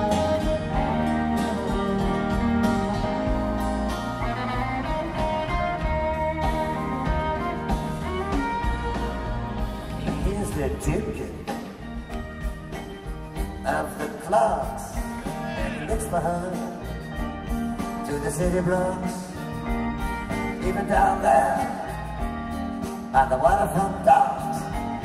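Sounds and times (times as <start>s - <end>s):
steady bass line: 0.0s - 13.7s
guitar sustained notes: 0.0s - 25.0s
live band playing: 0.0s - 25.0s
vocal singing: 13.6s - 16.9s, 20.5s - 22.1s, 23.1s - 25.0s.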